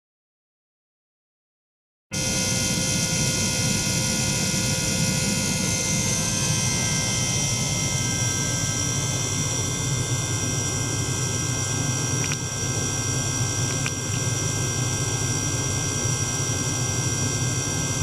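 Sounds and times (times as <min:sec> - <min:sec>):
high whine: 0:02.1 - 0:18.0
ultrasonic cleaner hiss and hum: 0:02.1 - 0:18.0.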